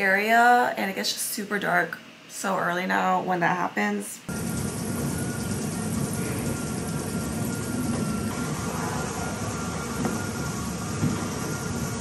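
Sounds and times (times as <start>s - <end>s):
faint machine whine: 0.0s - 12.0s
stair climbing machine rumble: 4.3s - 12.0s.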